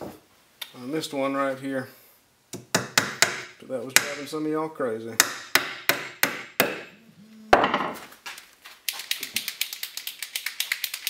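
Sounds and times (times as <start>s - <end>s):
hammer striking nail into wood: 2.6s - 4.2s, 5.2s - 6.9s.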